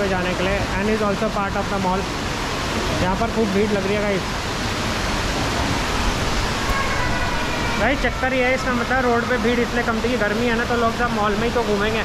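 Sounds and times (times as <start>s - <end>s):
indoor fountain water: 0.0s - 12.0s.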